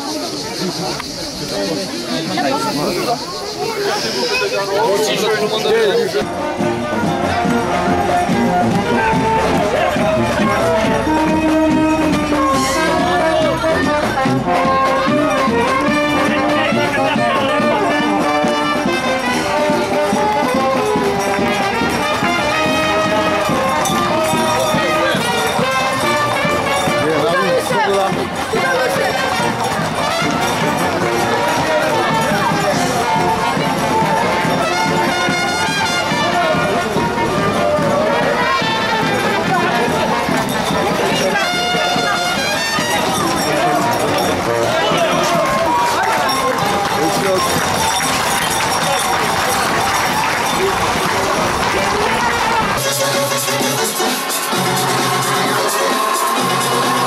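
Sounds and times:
crowd chatter and shouts: 0.0s - 57.0s
brass music playing: 2.3s - 57.0s.

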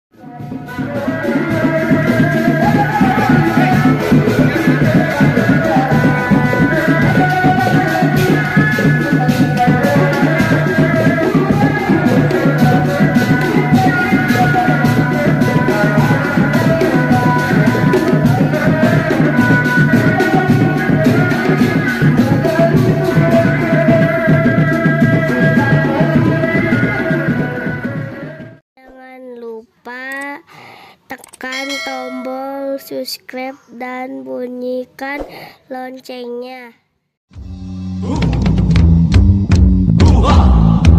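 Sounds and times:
person singing in high voice: 0.2s - 36.8s
drums playing fast beat: 0.4s - 28.1s, 31.5s - 32.5s
piercing melody line: 31.5s - 32.5s.

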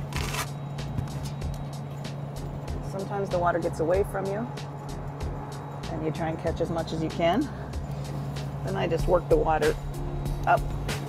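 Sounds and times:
ventilation hum: 0.0s - 11.0s.

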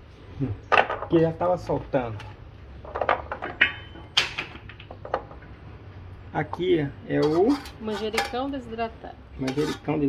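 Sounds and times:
kitchen items knocking: 2.2s - 5.4s.

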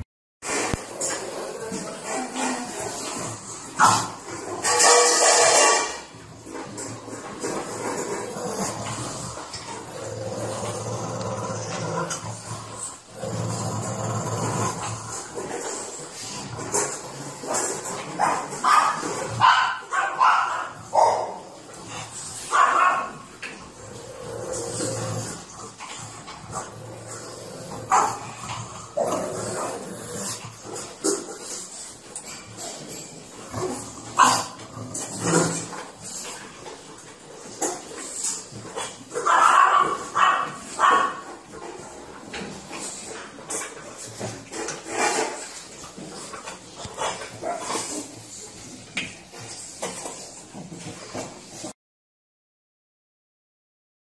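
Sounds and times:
dogs barking: 18.2s - 21.4s, 22.5s - 23.2s, 39.2s - 41.3s.

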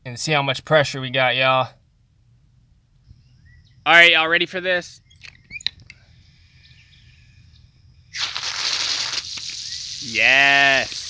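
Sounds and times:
light clicks and squeaks: 5.1s - 6.0s
hose nozzle spraying water: 8.2s - 11.0s.

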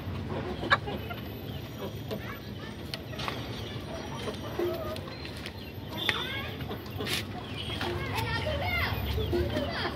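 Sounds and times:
children calling and chattering: 0.2s - 9.9s.

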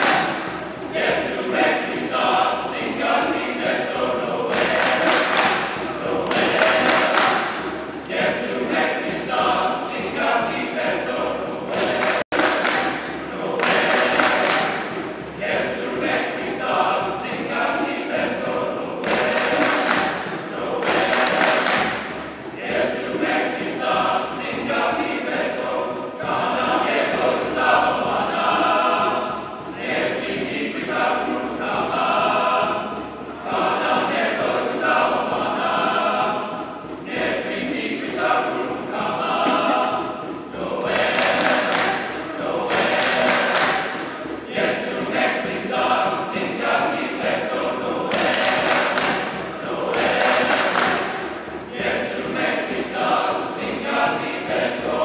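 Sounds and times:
mixed choir singing: 0.0s - 55.0s.

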